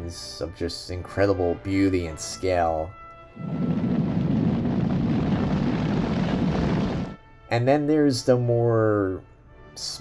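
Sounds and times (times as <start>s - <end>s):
horses galloping: 3.4s - 7.2s.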